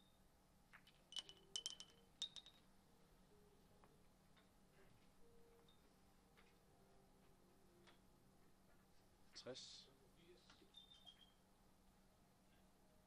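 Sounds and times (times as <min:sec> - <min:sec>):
billiard balls clicking: 0:00.7 - 0:02.7.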